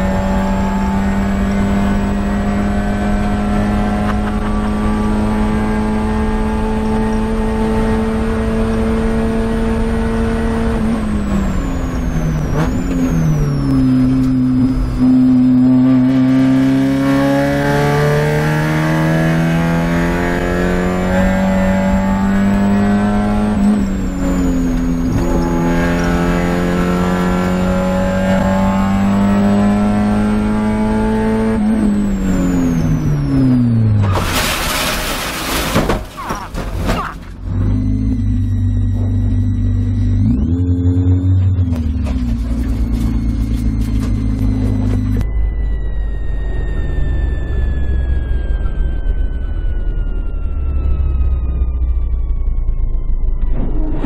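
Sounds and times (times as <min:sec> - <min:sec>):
race car engine revving: 0:00.0 - 0:45.2.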